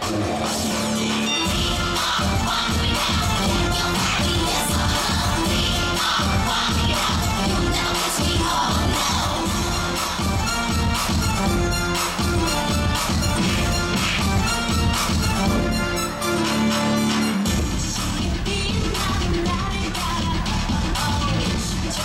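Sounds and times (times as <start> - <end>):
upbeat dance music heavy beat: 0.0 - 22.0.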